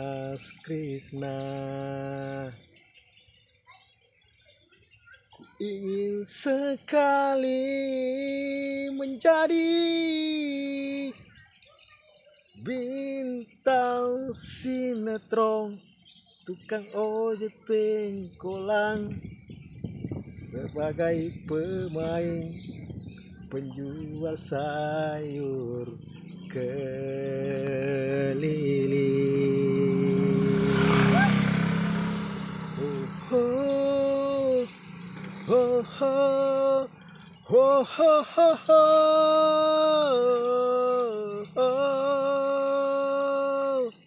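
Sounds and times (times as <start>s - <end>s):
motor vehicle passing: 24.2s - 40.8s.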